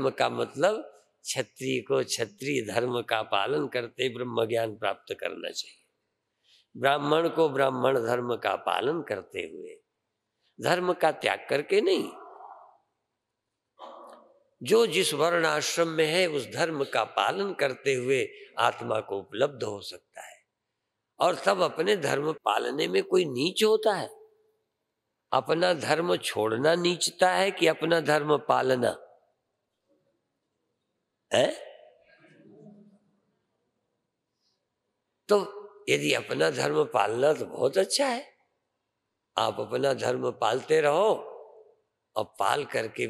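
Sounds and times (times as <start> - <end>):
man speaking: 0.0 - 5.7, 6.8 - 9.8, 10.6 - 12.6, 14.6 - 20.4, 21.2 - 24.2, 25.4 - 29.0, 31.3 - 31.6, 35.3 - 38.2, 39.4 - 41.4, 42.2 - 43.0.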